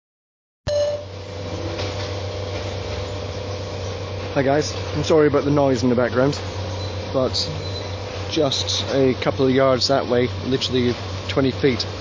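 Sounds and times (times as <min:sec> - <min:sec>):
construction machinery hum: 0:00.7 - 0:12.0.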